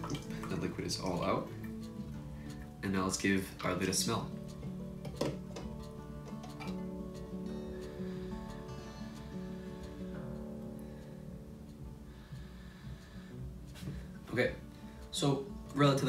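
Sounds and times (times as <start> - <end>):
plucked acoustic guitar music: 0.0 - 16.0.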